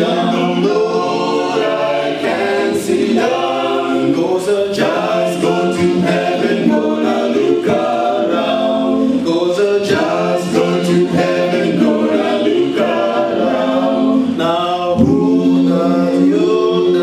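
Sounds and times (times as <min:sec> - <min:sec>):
male a cappella group singing: 0:00.0 - 0:17.0.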